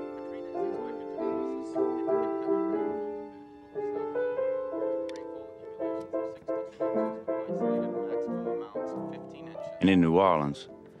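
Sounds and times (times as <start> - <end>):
slow piano melody: 0.0 - 11.0.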